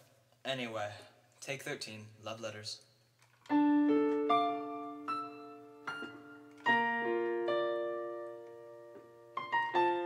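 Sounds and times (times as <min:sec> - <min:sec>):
digital piano notes: 0:03.4 - 0:10.0.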